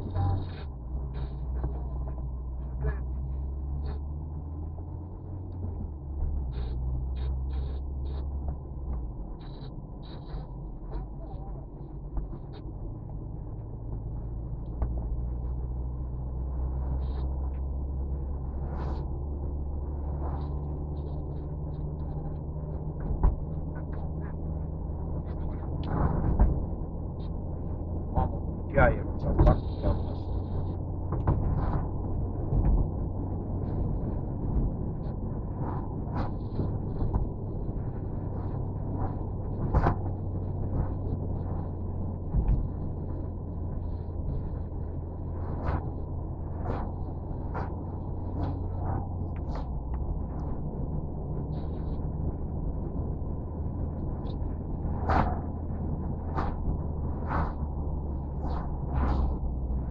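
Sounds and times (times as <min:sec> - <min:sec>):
car engine and road hum: 0:00.0 - 0:59.9.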